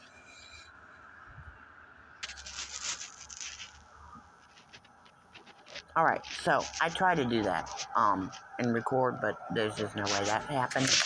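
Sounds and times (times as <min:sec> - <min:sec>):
scratchy rustling of compost: 0:02.2 - 0:08.6, 0:09.8 - 0:11.0.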